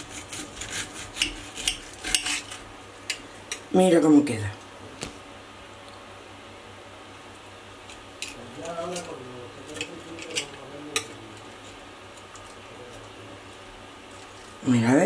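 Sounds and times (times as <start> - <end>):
faint room hum: 0.0 - 15.0.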